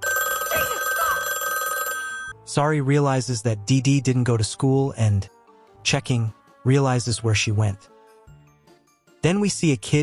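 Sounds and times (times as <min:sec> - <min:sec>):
telephone ringing: 0:00.0 - 0:02.4.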